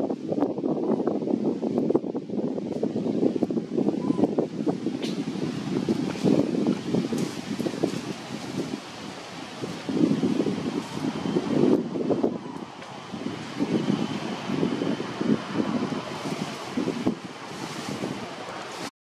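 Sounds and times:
wind buffeting microphone: 0:00.0 - 0:18.9.

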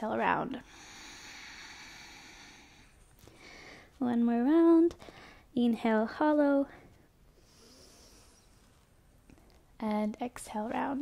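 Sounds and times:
person exhaling breath: 0:00.7 - 0:03.9.

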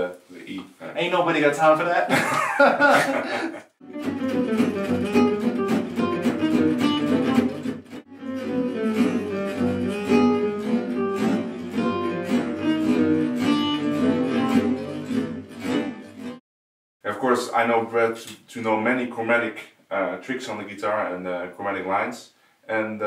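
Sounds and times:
acoustic guitar lead line: 0:02.9 - 0:16.4
strummed rhythm guitar: 0:02.9 - 0:16.4.

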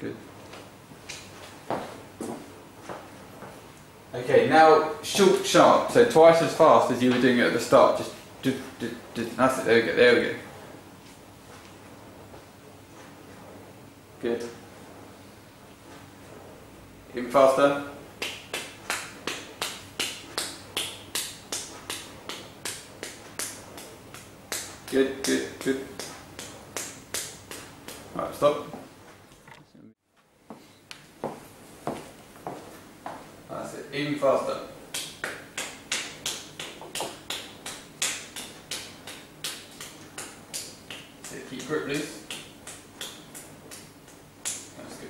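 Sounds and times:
rapid sharp taps: 0:18.2 - 0:28.2, 0:34.9 - 0:44.8.

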